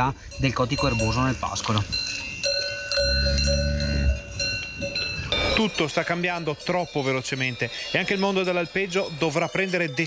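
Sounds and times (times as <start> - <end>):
cowbells clanking: 0.0 - 10.0
cow lowing: 3.0 - 5.6.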